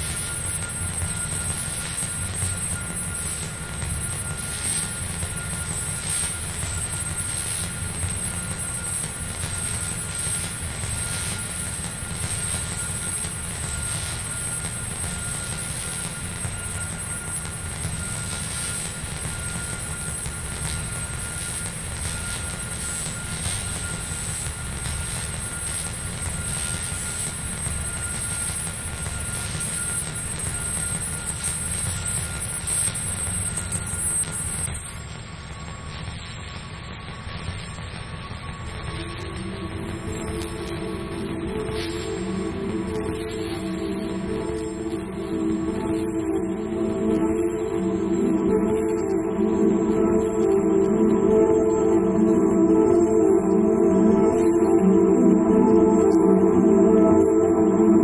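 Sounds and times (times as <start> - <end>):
high whistling tones: 34.7 - 58.0
low rumble: 34.8 - 58.0
thin held tone: 34.8 - 58.0.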